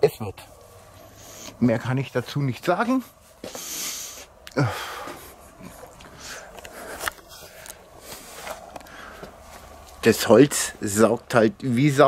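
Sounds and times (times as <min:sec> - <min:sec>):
man breathing: 0:01.0 - 0:01.6, 0:03.4 - 0:09.5
man sighing: 0:04.4 - 0:07.1
camera handling rustle: 0:06.0 - 0:09.9.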